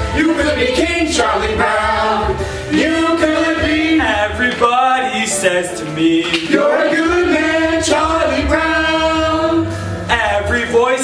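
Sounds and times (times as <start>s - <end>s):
ensemble singing together: 0.0s - 11.0s.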